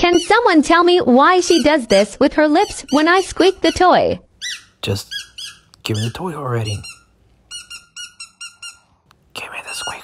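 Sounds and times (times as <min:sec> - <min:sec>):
squeaky dog toy squeaking: 0:00.0 - 0:08.9.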